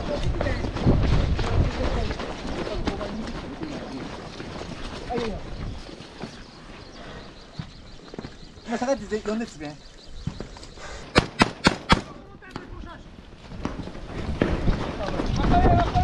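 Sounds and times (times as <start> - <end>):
boots running on wet pavement: 0.0 - 9.3
voices in background: 0.0 - 11.2.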